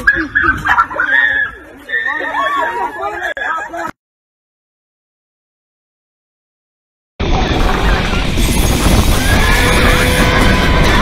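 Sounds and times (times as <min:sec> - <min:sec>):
horse and cart rushing noise: 0:07.2 - 0:11.0
music: 0:08.7 - 0:11.0.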